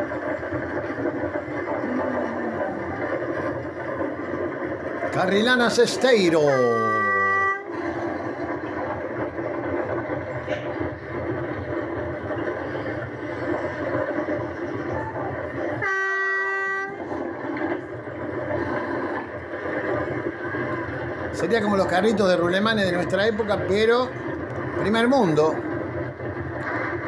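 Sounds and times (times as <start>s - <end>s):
horn-like steady tone: 6.6s - 7.8s, 15.1s - 17.1s.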